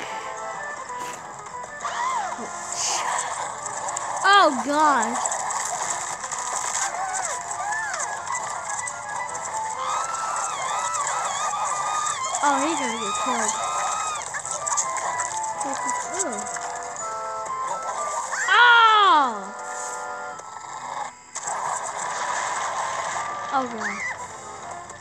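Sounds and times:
cartoon background music: 0.0s - 25.0s
high-pitched character voices: 4.2s - 5.2s, 9.7s - 16.7s, 17.8s - 19.6s, 23.5s - 24.2s.

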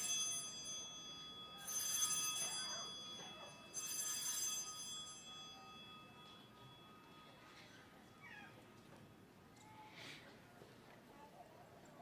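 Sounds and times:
altar bell ringing: 0.0s - 8.8s.

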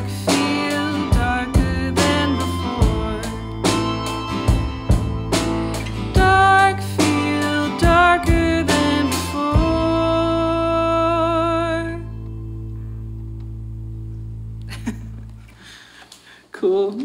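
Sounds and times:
band chord ringing out: 1.5s - 6.8s
person speaking: 16.4s - 17.0s.

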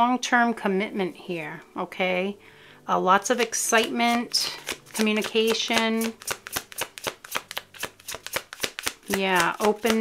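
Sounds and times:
cards being shuffled: 3.4s - 10.0s.

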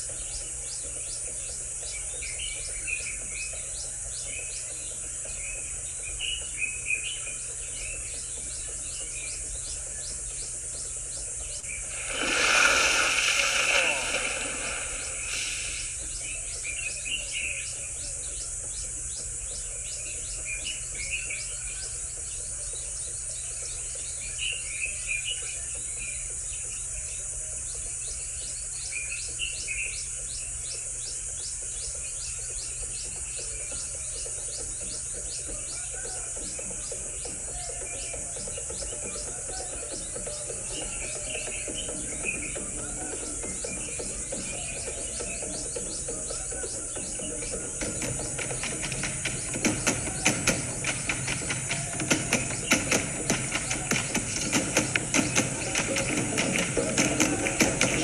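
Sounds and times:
bird chirps: 0.0s - 27.0s, 27.7s - 58.0s
insect buzzing trill: 11.6s - 17.5s
loud rushing sound: 11.8s - 16.1s.

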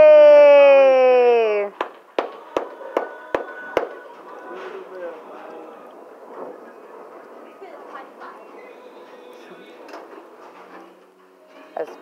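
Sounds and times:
faint bowling alley hum: 1.7s - 11.8s.

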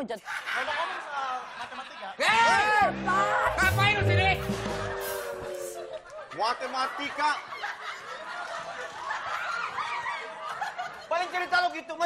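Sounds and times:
group of people laughing: 0.2s - 2.6s, 5.7s - 11.8s.

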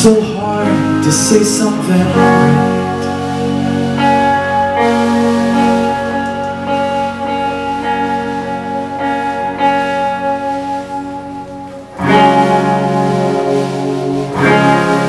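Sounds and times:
live rock band with electric guitars: 0.0s - 15.0s.

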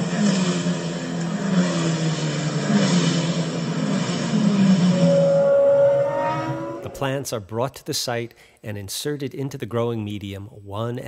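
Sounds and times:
car engine accelerating: 0.0s - 7.4s
high engine whine: 0.0s - 7.5s.

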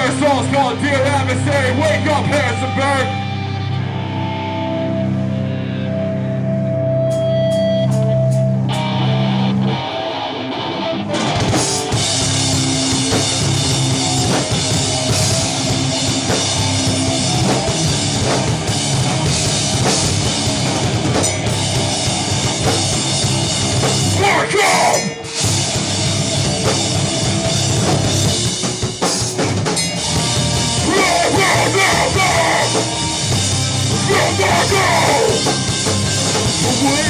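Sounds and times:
live metal band playing: 0.0s - 37.0s.

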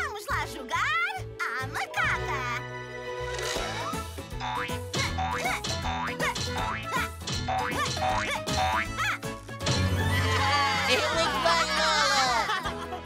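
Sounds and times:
cartoon background music: 0.0s - 13.0s
springy boing sound effects: 4.4s - 9.1s.

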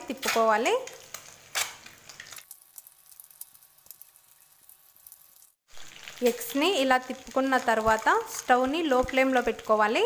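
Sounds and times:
eggs sizzling in hot oil: 0.0s - 10.0s.

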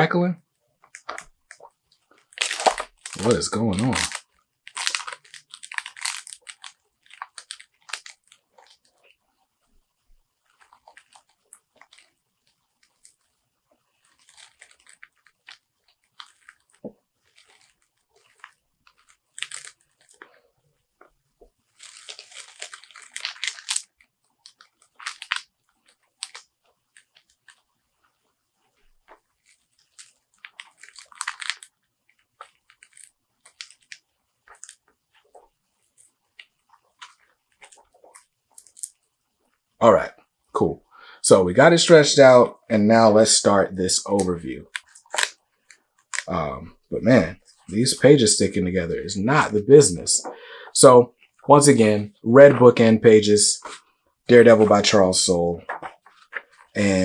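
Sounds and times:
glossy pages crackling: 0.8s - 9.7s, 10.3s - 40.3s, 43.9s - 48.7s, 49.4s - 57.0s.

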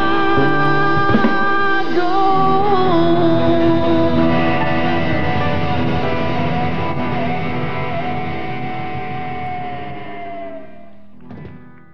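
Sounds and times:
rock band closing chord: 0.0s - 11.8s.

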